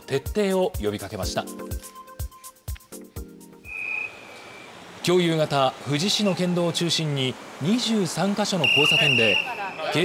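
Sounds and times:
street traffic noise: 0:01.7 - 0:10.0
high whistle-like tone: 0:03.6 - 0:04.7, 0:08.6 - 0:09.8.

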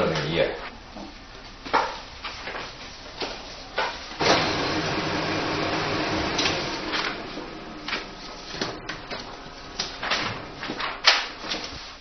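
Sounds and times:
photocopier humming and whirring: 0:00.0 - 0:12.0.

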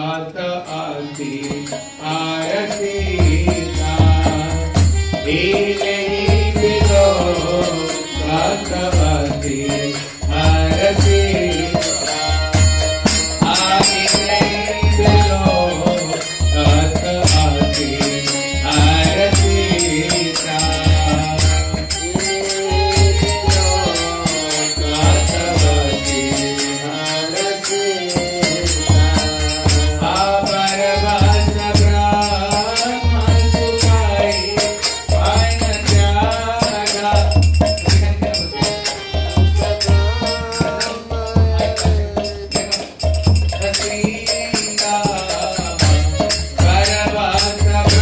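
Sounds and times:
person singing a chant: 0:00.0 - 0:48.0
jingling hand cymbals: 0:00.6 - 0:48.0
drum beat: 0:03.0 - 0:26.6, 0:27.2 - 0:48.0
hand drum: 0:28.1 - 0:48.0.

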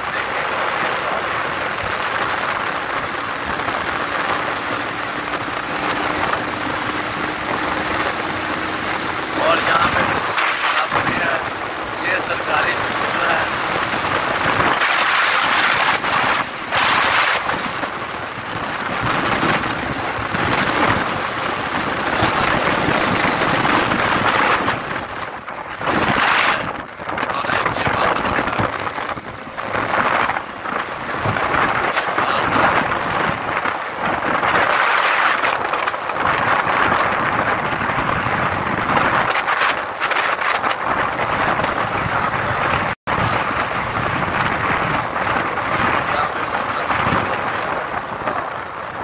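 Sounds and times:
rushing wind: 0:00.0 - 0:49.0
vehicle road noise: 0:00.0 - 0:49.0.

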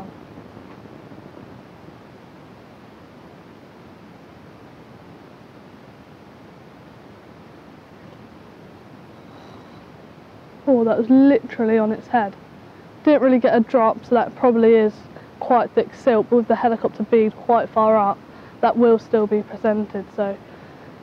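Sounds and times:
wind on microphone: 0:00.0 - 0:02.5.

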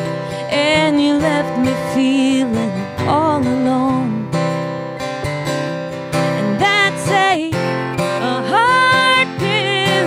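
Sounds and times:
woman singing: 0:00.0 - 0:04.6, 0:06.2 - 0:10.0
acoustic guitar strumming: 0:00.0 - 0:10.0.

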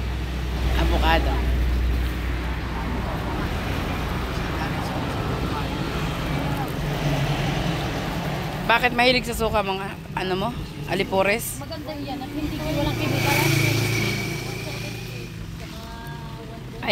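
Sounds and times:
motor vehicle passing: 0:00.0 - 0:16.9
traffic hum: 0:00.0 - 0:16.9.

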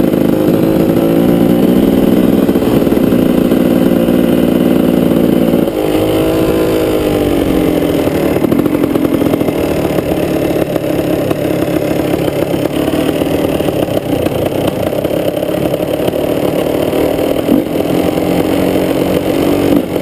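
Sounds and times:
two-stroke dirt bike engine running: 0:00.0 - 0:20.0.

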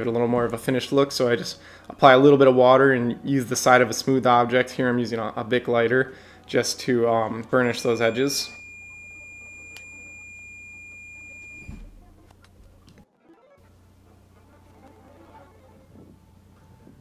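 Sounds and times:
high-pitched electronic tone: 0:07.6 - 0:11.9.

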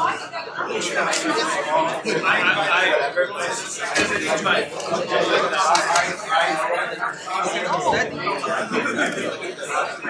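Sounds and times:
crowd talking at once: 0:00.0 - 0:10.0.

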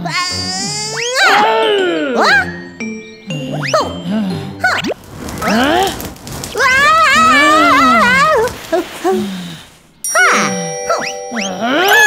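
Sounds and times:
cartoon character whining: 0:00.0 - 0:02.5.

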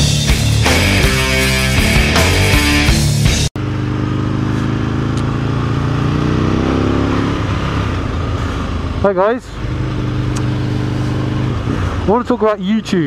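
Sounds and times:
rock music: 0:00.0 - 0:03.6
motorcycle engine accelerating: 0:00.0 - 0:13.0
wind and road noise: 0:03.6 - 0:13.0.

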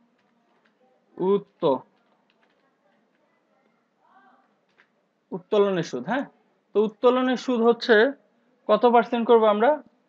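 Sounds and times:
person speaking: 0:00.3 - 0:03.5.

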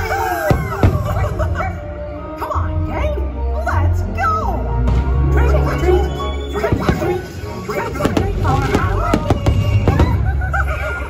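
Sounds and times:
music playing: 0:00.0 - 0:11.0
fireworks bangs: 0:06.6 - 0:10.4.

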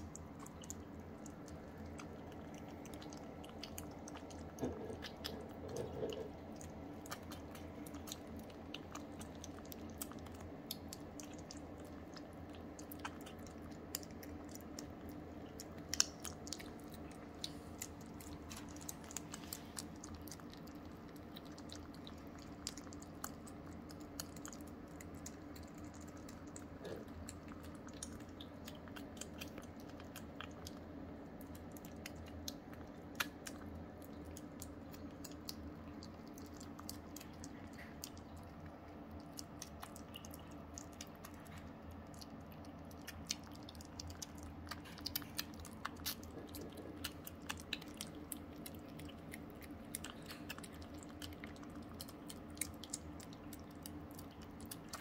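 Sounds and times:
kittens smacking and chewing: 0:00.0 - 0:55.0
low room hum: 0:00.0 - 0:55.0.

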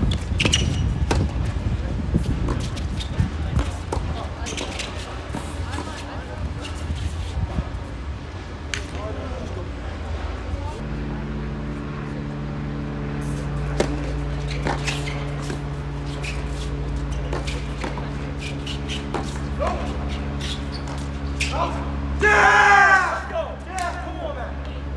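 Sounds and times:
steady low hum: 0:00.0 - 0:24.9
tennis racket hitting ball: 0:13.2 - 0:21.6.

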